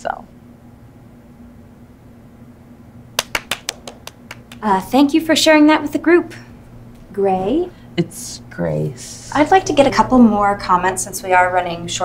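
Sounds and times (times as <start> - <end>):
steady low hum: 0.0 - 12.0
hand clapping: 3.2 - 4.8.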